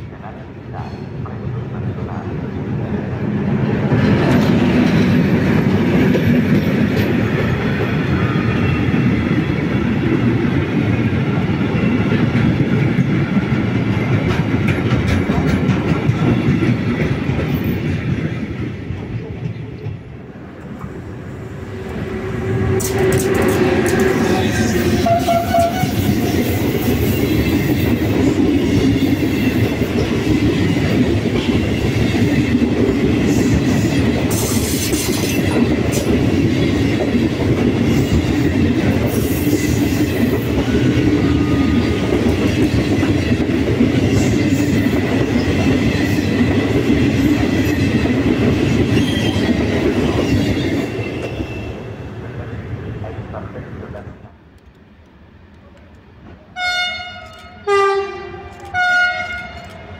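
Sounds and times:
train passing close by: 0.0 - 59.9.

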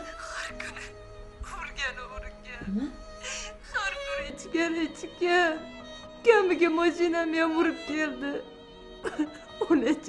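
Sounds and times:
background music: 0.0 - 10.0
woman sobbing: 3.1 - 4.4, 8.9 - 10.0.

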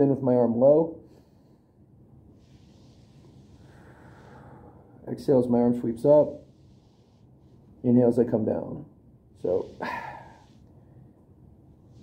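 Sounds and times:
person breathing in: 2.4 - 5.0, 9.6 - 11.0.

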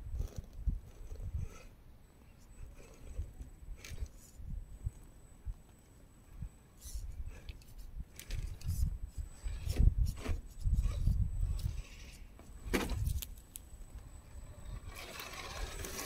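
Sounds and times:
toy car drivetrain whir: 14.2 - 16.0.

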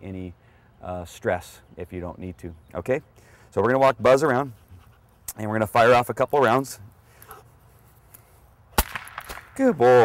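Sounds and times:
cap gun shot: 8.8 - 9.7.

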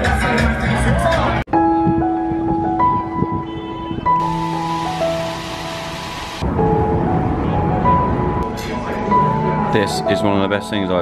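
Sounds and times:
hissing wash of noise: 4.2 - 6.9.

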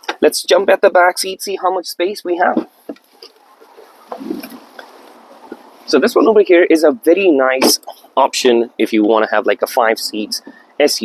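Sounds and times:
clothes rustling: 2.6 - 6.0.

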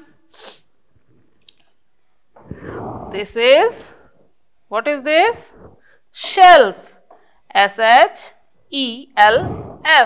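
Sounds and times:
person exhaling: 2.4 - 4.1, 9.4 - 9.9.

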